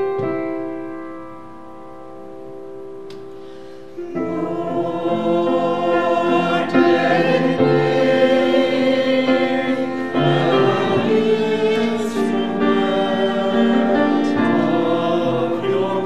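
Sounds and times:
grand piano chord: 0:00.0 - 0:16.0
piano accompaniment: 0:00.0 - 0:16.0
choir singing: 0:04.0 - 0:16.0.

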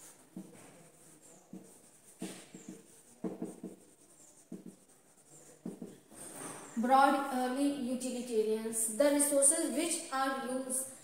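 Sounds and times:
marker pen squeaking on whiteboard: 0:00.0 - 0:06.8.

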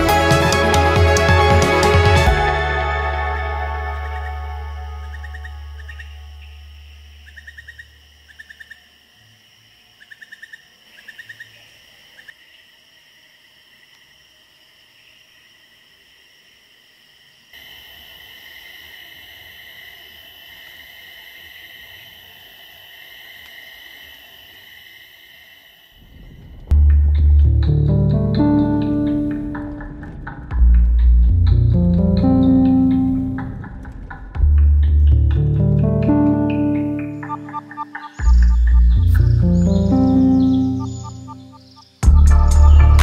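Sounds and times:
background music: 0:00.0 - 0:06.4, 0:26.7 - 0:43.0
insects chirping trills: 0:03.0 - 0:26.9, 0:27.5 - 0:43.0
high-pitched insect drone: 0:03.8 - 0:09.3, 0:35.6 - 0:43.0.

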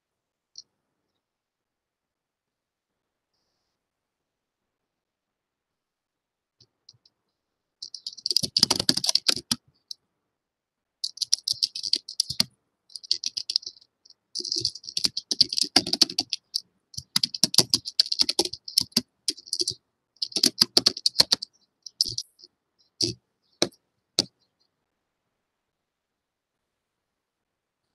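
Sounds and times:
computer keyboard typing: 0:07.8 - 0:09.6, 0:11.0 - 0:24.4.

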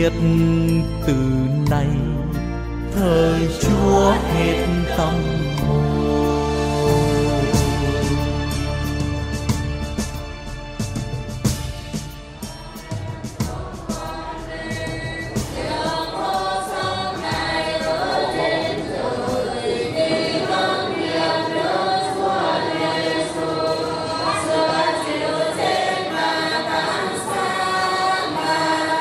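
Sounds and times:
church choir singing a hymn: 0:03.0 - 0:08.7, 0:12.7 - 0:29.0.

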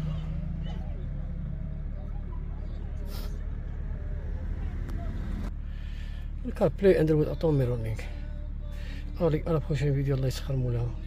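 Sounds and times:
faint voices: 0:00.0 - 0:08.5
steady low hum: 0:00.0 - 0:11.0.

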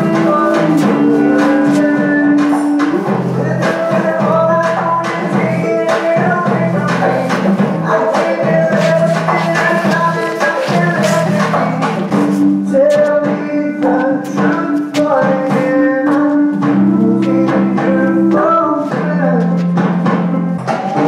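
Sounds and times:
song with percussion: 0:00.0 - 0:21.0.

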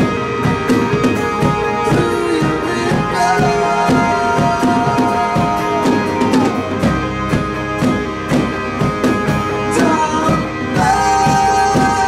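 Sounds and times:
drum hits: 0:00.0 - 0:12.0
electric and acoustic guitars: 0:00.0 - 0:12.0
man singing long notes: 0:01.8 - 0:06.8, 0:09.7 - 0:12.0.

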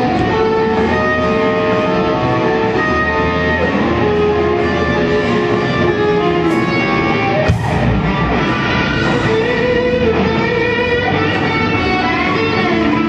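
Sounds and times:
live band playing: 0:05.2 - 0:11.2
cymbal crash: 0:06.5 - 0:09.6.

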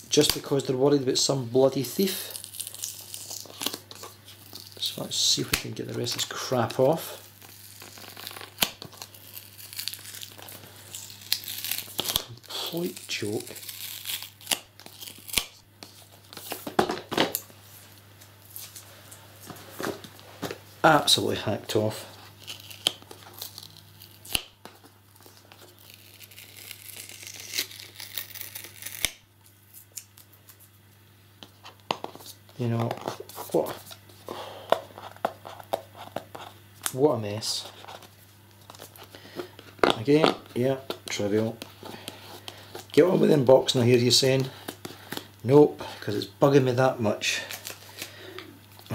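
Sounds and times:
plastic sticker crinkling and tearing: 0:01.8 - 0:17.4, 0:22.2 - 0:30.7.

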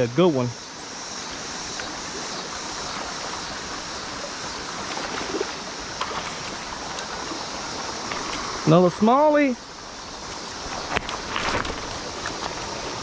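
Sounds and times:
creek water rushing over rocks: 0:00.0 - 0:13.0.

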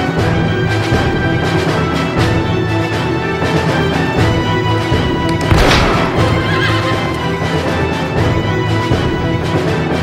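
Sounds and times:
orchestral trailer music: 0:00.0 - 0:10.0
horse whinnying: 0:05.9 - 0:07.4.

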